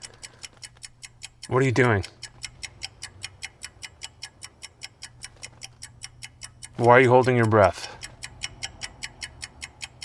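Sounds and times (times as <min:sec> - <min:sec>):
rapid clock-like ticking: 0:00.0 - 0:10.0.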